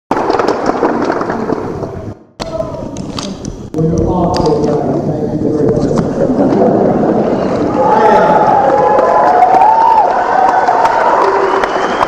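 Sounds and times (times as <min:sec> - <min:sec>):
audience applauding: 0:00.1 - 0:01.7, 0:06.8 - 0:12.0.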